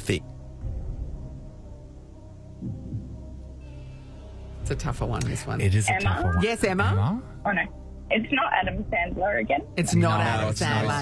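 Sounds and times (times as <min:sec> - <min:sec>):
low sustained music tones: 0:00.0 - 0:11.0
bass throb: 0:00.6 - 0:03.6.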